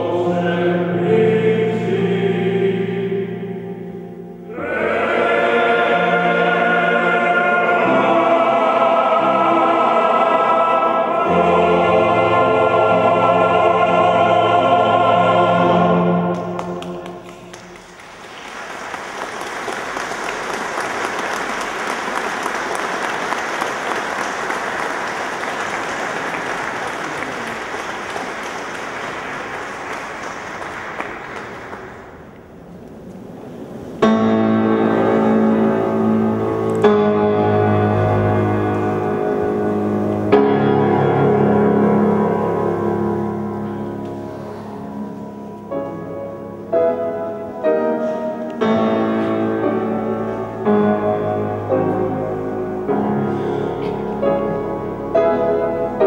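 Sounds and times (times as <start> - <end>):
men's choir singing: 0.0 - 3.7, 4.4 - 17.8
audience applause: 16.3 - 32.4.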